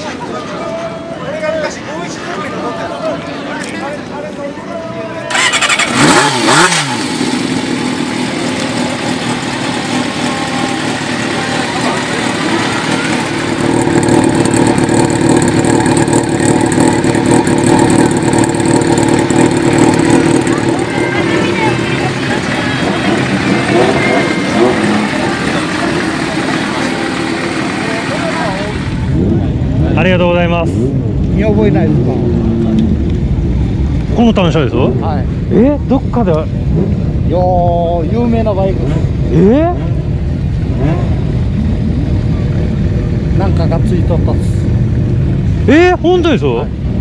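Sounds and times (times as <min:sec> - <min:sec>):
motorcycle engine running: 0:05.3 - 0:35.5.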